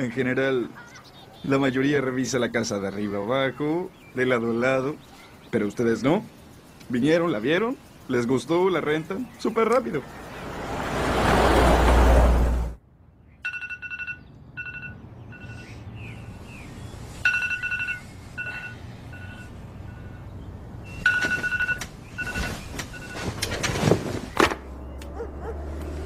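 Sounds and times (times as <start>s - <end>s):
loud rising rush of noise: 10.0s - 12.8s
smartphone alarm beeping: 13.4s - 15.8s, 17.2s - 20.3s, 20.9s - 23.3s
rustling: 20.9s - 24.6s.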